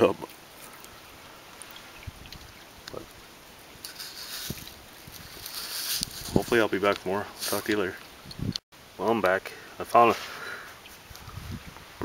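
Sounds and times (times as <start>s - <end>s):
rustle of wind or movement: 0.0s - 12.0s.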